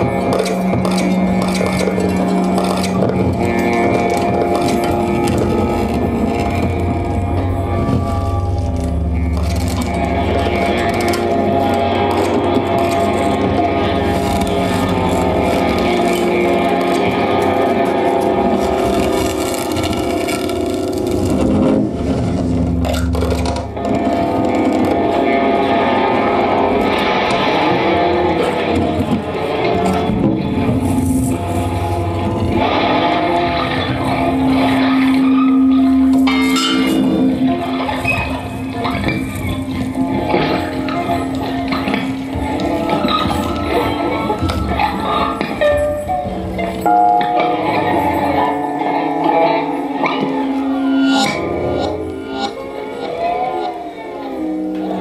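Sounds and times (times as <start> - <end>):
low electronic drone: 0.0 - 55.0
scratchy noisy texture: 0.0 - 55.0.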